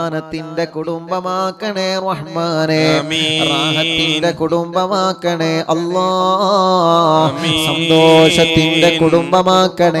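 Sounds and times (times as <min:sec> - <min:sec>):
man chanting over a microphone: 0:00.0 - 0:10.0.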